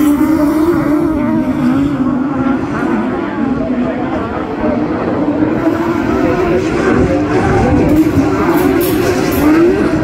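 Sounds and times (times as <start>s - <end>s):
racing car engines droning: 0.0s - 10.0s.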